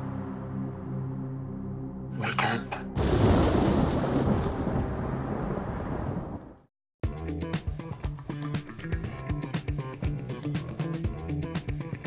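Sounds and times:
deep rumbling boom: 3.0 - 6.7.

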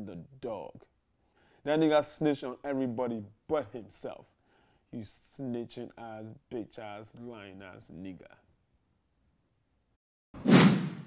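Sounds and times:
whoosh sound effect: 10.4 - 11.0.

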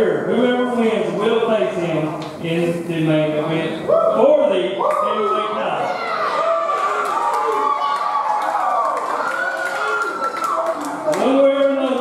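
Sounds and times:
man speaking over sound system: 0.0 - 5.9, 11.2 - 12.0
crowd cheering and clapping: 6.0 - 12.0.

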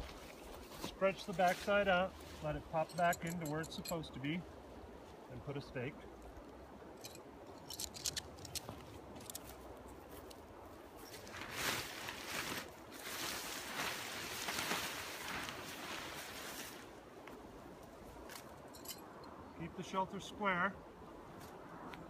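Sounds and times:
tent fabric crunchy rustling: 0.0 - 3.2, 10.9 - 17.0.

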